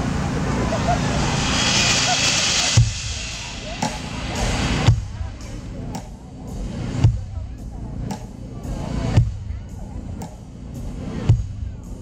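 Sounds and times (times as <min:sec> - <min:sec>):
crowd rumble and hiss: 0:00.0 - 0:12.0
scattered voices: 0:00.0 - 0:12.0.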